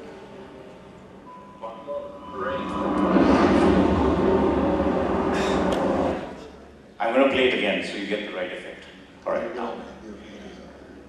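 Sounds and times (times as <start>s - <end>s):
airliner roar flying low: 1.7s - 6.6s.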